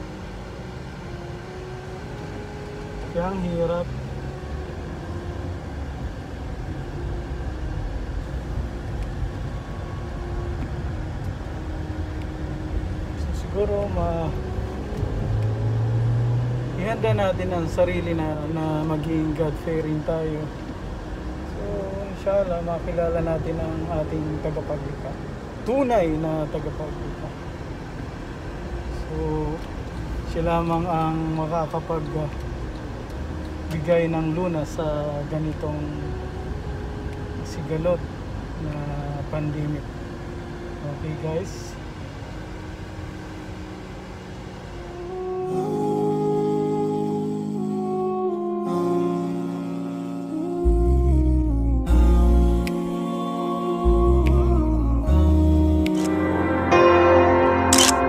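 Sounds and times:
car cabin rumble: 0.0s - 45.4s
air-conditioning fan blowing: 0.0s - 57.7s
person speaking: 21.5s - 27.6s
man humming a low tone: 44.8s - 57.7s.

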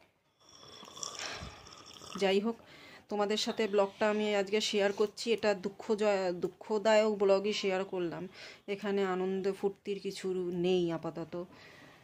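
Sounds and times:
woman breathing: 1.1s - 1.8s, 2.6s - 3.1s, 8.3s - 8.7s, 11.5s - 12.0s.

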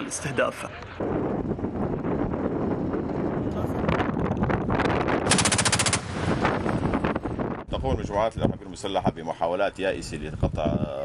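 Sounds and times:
autocannon firing: 5.2s - 7.0s.

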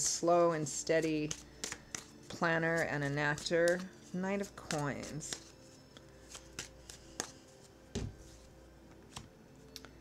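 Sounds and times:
cards shuffling: 1.0s - 9.3s.

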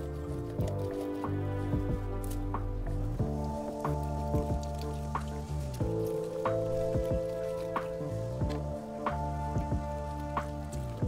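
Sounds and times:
held chords: 0.0s - 11.0s.

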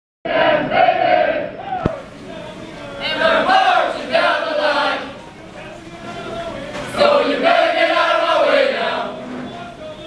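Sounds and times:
group singing in unison: 0.3s - 1.8s, 3.0s - 5.2s, 6.8s - 9.6s.

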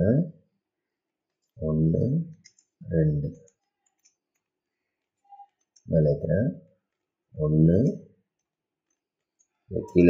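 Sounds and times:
man speaking: 0.0s - 0.4s, 1.6s - 3.5s, 5.8s - 8.2s, 9.7s - 10.0s.

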